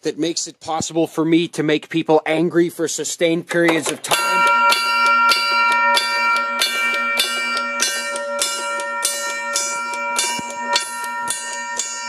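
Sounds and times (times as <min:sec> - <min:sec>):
brass gong struck by hammer: 0:04.1 - 0:12.0.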